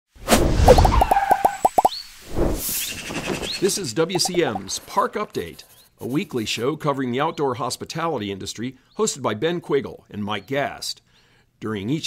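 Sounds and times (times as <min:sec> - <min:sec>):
cartoon whoosh: 0:00.4 - 0:01.9
falling bloop-like pops: 0:00.7 - 0:02.0, 0:04.2 - 0:04.7.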